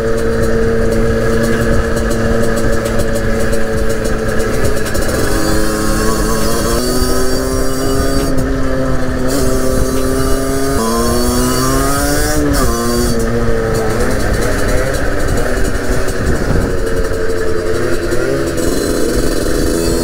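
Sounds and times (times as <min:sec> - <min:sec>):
motorcycle engine high revs: 0:00.0 - 0:20.0
wind rumble on microphone: 0:00.0 - 0:20.0.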